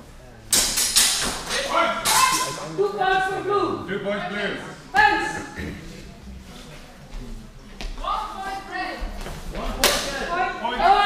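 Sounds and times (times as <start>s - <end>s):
raised voices echoing in a hall: 0.0s - 11.0s.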